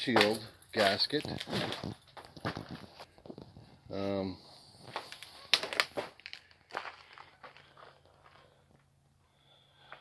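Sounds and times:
footsteps on gravel: 0.0s - 3.4s, 4.8s - 8.6s.

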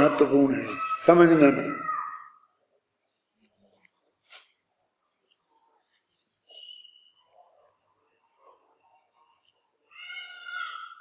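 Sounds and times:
high-pitched drawn-out cry: 9.9s - 11.0s.

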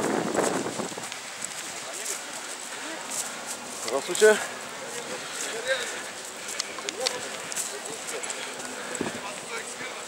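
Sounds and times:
outdoor background noise: 0.0s - 10.0s
faint voices talking: 1.2s - 10.0s.

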